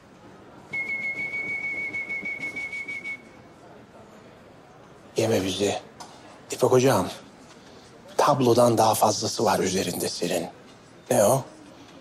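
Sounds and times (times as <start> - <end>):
high whistled note: 0.7 - 3.4.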